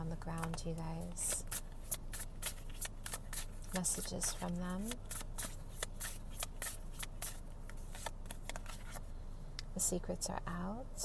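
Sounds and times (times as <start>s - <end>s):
steady low hum: 0.0s - 11.0s
cards being shuffled: 0.3s - 9.1s.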